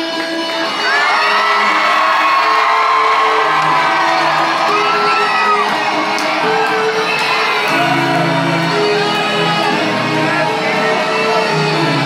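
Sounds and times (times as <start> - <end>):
live pop music with synth: 0.0 - 12.0
crowd screaming and whooping: 0.5 - 12.0.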